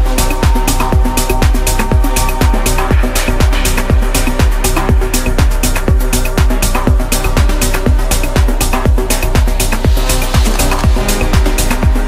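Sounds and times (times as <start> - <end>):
hi-hats: 0.0 - 12.0
kick drum: 0.0 - 12.0
sustained synth chords: 0.0 - 12.0.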